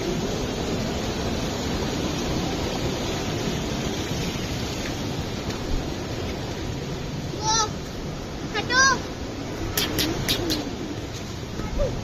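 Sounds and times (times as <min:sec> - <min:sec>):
running water: 0:00.0 - 0:12.0.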